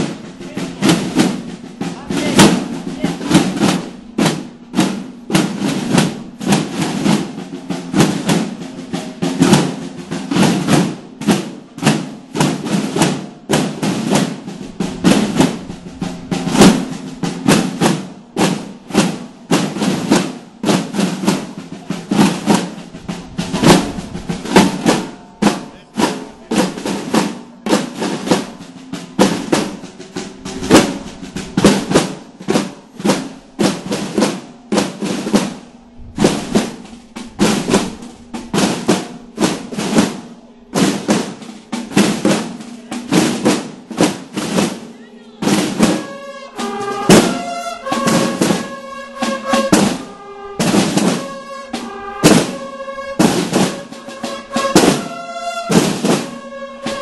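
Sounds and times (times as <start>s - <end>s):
snare drums beaten rapidly: 0.0s - 57.0s.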